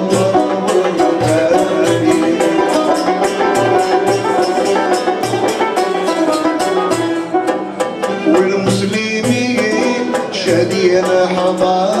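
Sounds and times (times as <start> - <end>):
low drum beats: 0.0 - 12.0
plucked oud and banjo: 0.0 - 12.0
violin: 0.0 - 12.0.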